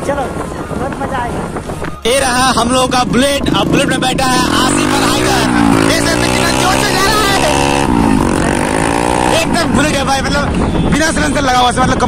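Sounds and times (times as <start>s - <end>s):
motorcycle engine running: 2.3s - 11.3s.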